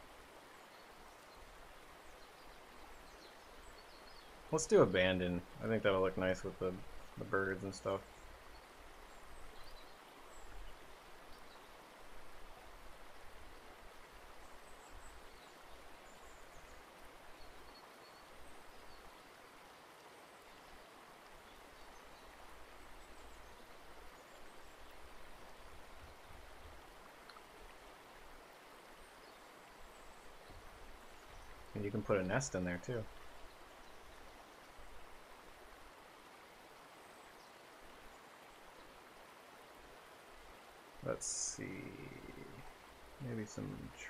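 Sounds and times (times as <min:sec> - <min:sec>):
microphone hiss: 0:00.0 - 0:44.0.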